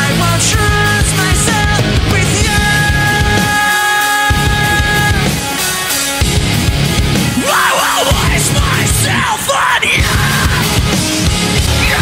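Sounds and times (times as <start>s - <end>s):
screamed lead vocal: 0.0s - 5.9s, 7.2s - 11.0s, 11.6s - 12.0s
distorted electric guitars: 0.0s - 12.0s
drums: 0.0s - 12.0s.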